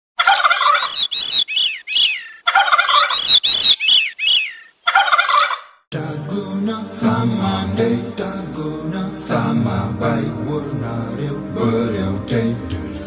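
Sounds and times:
bird calls rattling: 0:00.2 - 0:05.8.

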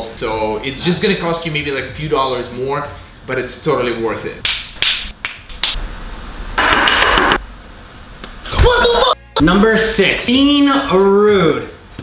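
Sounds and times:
fingers snapping: 0:04.4 - 0:05.8.

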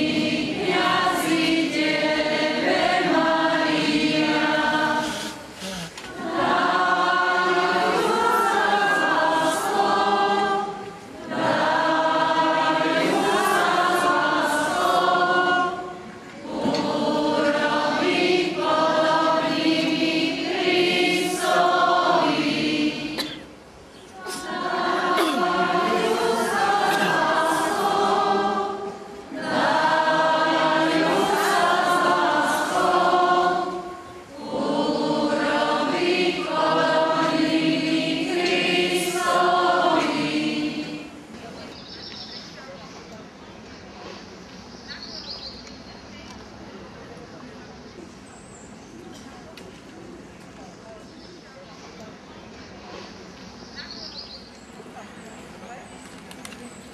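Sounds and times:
many voices singing a hymn: 0:00.0 - 0:41.8.

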